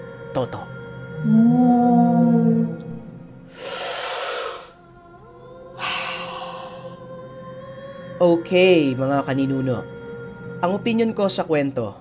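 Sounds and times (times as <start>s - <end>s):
soft background music: 0.0s - 12.0s
breathy hiss: 3.4s - 4.8s, 5.8s - 7.0s.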